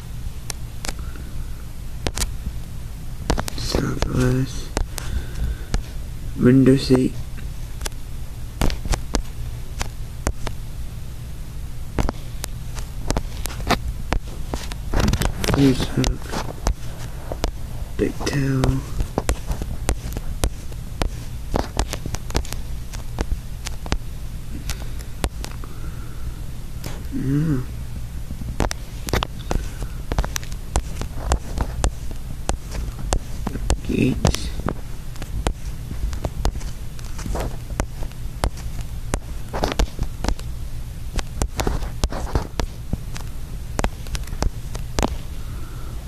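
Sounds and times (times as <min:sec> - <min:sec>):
cabin hum and hiss: 0:00.0 - 0:46.0
sharp clicks and taps: 0:02.0 - 0:02.5, 0:03.2 - 0:06.0, 0:08.6 - 0:10.6, 0:12.0 - 0:25.8, 0:28.4 - 0:40.5, 0:41.1 - 0:45.3.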